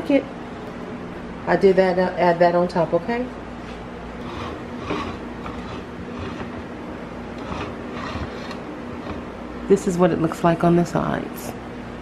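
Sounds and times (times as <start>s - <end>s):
low background hum: 0.0s - 12.0s.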